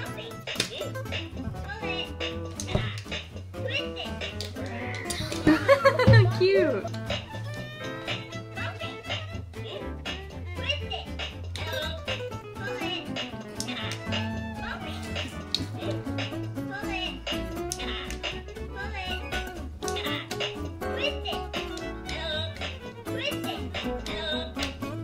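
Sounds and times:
looping toy music with beat: 0.0 - 24.9.

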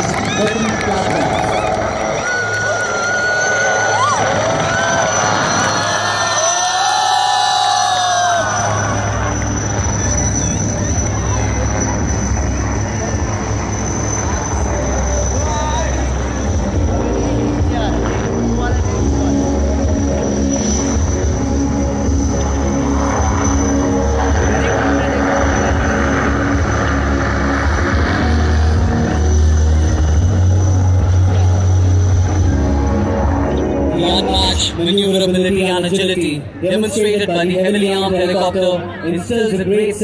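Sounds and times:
helicopter high whine: 0.0 - 40.0
helicopter rotor drone: 0.0 - 40.0.

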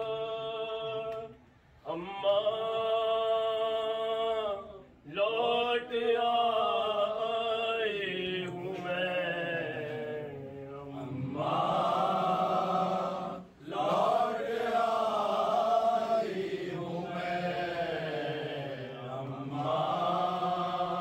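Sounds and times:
men chanting a sung lament: 0.0 - 21.0.

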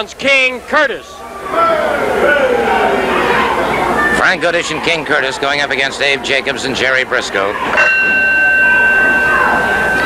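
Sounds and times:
crowd murmuring: 1.0 - 10.0
ring bell long high tone: 7.8 - 10.0.

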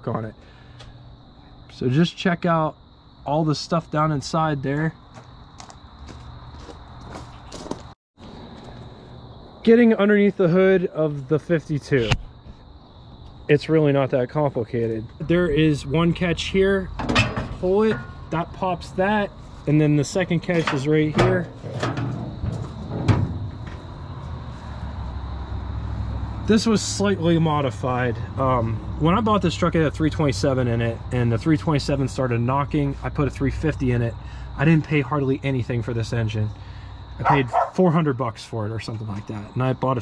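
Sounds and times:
crickets trilling: 0.0 - 40.0
metal truck hood clunking open: 16.9 - 18.3, 20.4 - 24.1.

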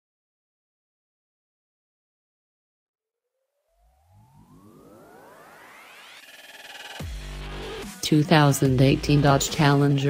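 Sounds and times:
synth tones sweeping upward: 3.6 - 7.2.

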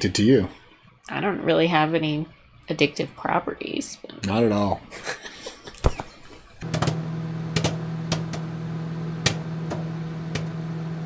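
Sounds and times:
low hum: 6.5 - 11.0.

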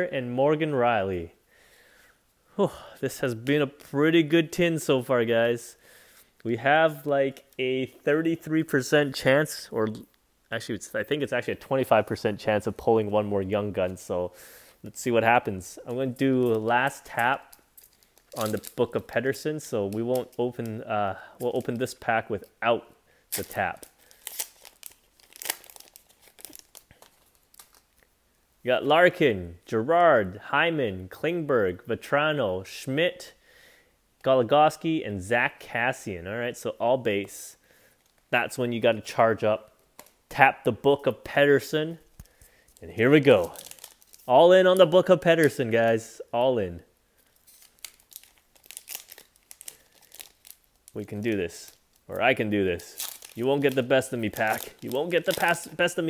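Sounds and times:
wrapper tearing and crinkling: 16.2 - 19.1, 23.3 - 28.1, 43.2 - 45.6, 47.2 - 56.0.

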